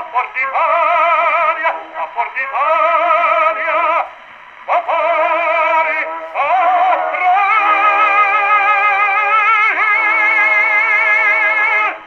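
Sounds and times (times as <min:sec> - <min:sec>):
operatic tenor on gramophone record: 0:00.0 - 0:12.0.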